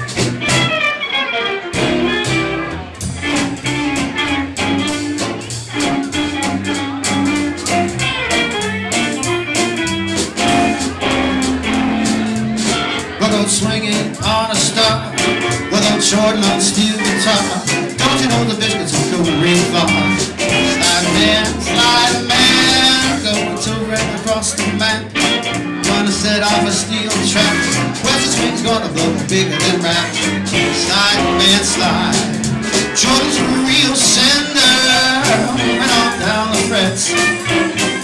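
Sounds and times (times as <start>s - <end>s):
drum kit: 0.0s - 38.0s
electric guitar: 0.0s - 38.0s
upright bass: 0.0s - 38.0s.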